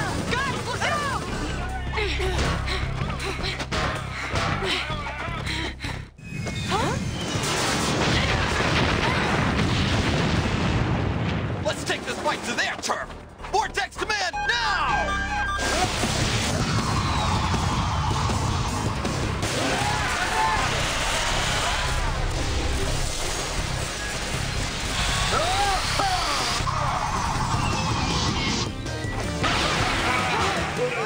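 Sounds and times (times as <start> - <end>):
action music with steady beat: 13.1 - 16.4
crash and impact effects: 15.5 - 28.7.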